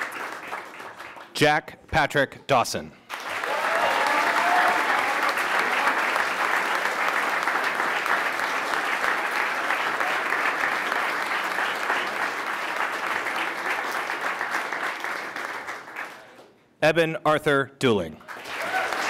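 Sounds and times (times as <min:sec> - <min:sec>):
audience applauding: 0:00.0 - 0:01.4, 0:03.1 - 0:16.5, 0:18.2 - 0:19.0.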